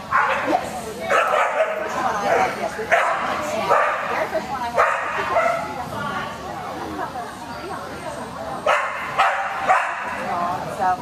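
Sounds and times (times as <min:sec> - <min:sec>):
people's voices: 0:00.0 - 0:11.0
dog barking: 0:00.1 - 0:00.5, 0:01.1 - 0:04.2, 0:04.8 - 0:05.7, 0:08.7 - 0:10.2.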